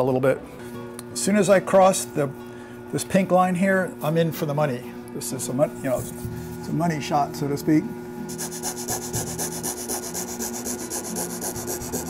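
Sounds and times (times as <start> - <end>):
scroll saw cutting wood: 8.3 - 12.0.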